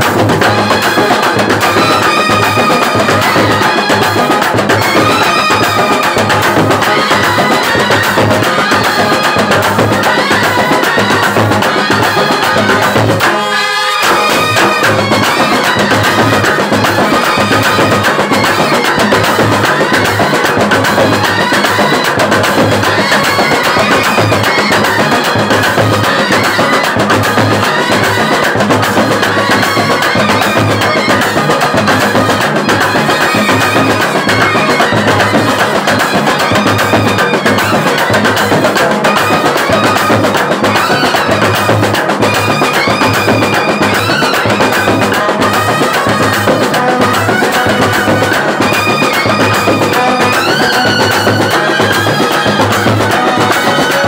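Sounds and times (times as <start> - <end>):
brass and reed band with drums: 0.0 - 54.0.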